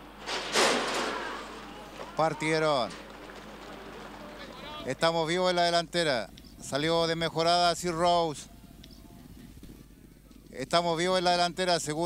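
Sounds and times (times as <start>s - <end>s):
starting gate doors banging open: 0.0s - 4.9s.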